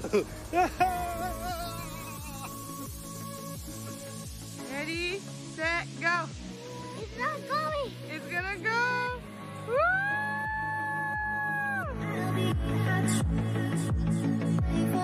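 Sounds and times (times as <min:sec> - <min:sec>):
electronic dance music: 0:00.0 - 0:09.8
child shouting and squealing: 0:00.9 - 0:02.7, 0:07.1 - 0:07.9.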